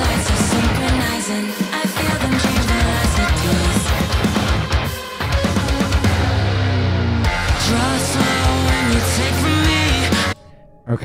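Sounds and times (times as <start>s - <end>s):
distorted guitars: 0.0s - 1.3s, 2.0s - 11.0s
person singing: 0.0s - 6.2s, 7.3s - 10.4s
heavy metal music: 0.0s - 11.0s.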